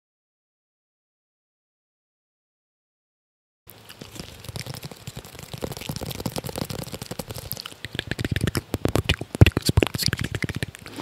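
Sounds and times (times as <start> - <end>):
small clicks and crackles: 3.8 - 11.0.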